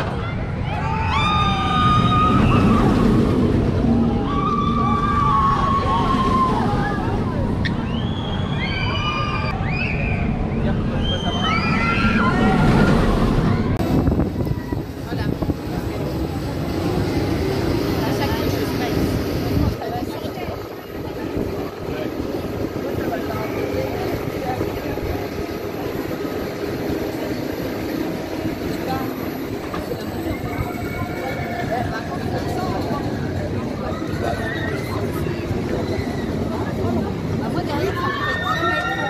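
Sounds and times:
ride rumbling: 0.0 - 39.0
roller coaster rushing past: 0.0 - 39.0.

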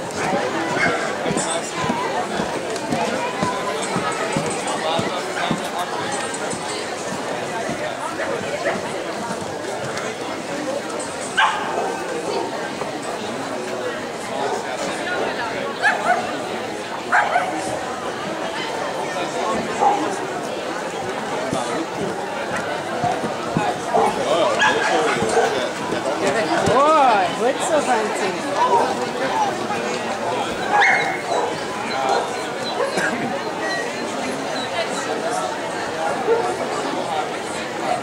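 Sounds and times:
murmur of crowd chatter: 0.0 - 38.0
dog yipping: 30.7 - 33.0.

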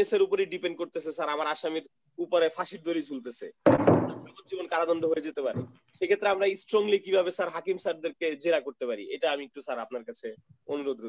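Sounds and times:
loud thump: 3.7 - 4.4.

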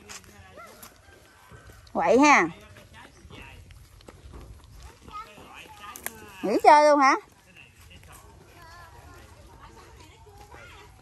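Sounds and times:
faint voices talking: 0.0 - 11.0.

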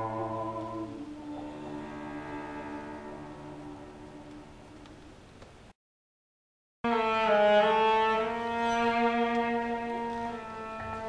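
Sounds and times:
person singing: 0.0 - 5.1
cello bowed notes: 0.0 - 5.2, 6.8 - 11.0.

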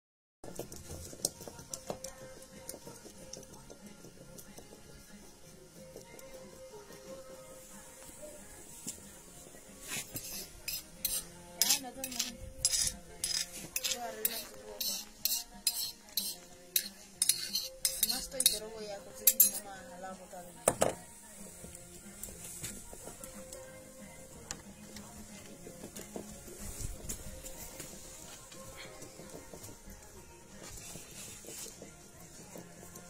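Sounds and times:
grinding stone rubbing on stone: 9.8 - 19.6
metal spoon scraping stone: 9.8 - 19.7.

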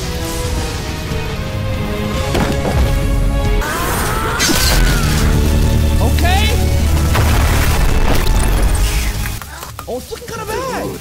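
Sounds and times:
dramatic soundtrack music: 0.0 - 11.0.

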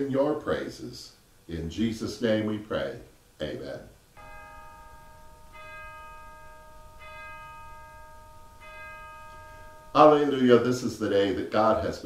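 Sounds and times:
bell chimes: 4.2 - 11.5.

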